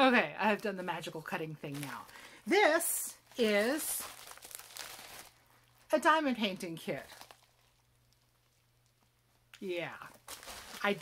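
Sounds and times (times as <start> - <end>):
plastic package crinkling: 3.2 - 5.9, 6.6 - 11.0.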